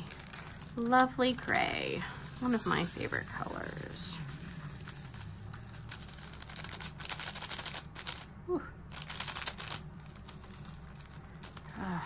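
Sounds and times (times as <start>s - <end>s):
plastic beads rattling on a tray: 0.0s - 8.3s, 8.9s - 11.7s.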